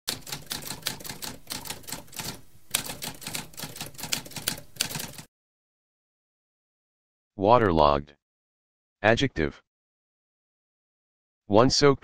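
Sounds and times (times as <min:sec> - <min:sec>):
manual typewriter typing: 0:00.1 - 0:05.3.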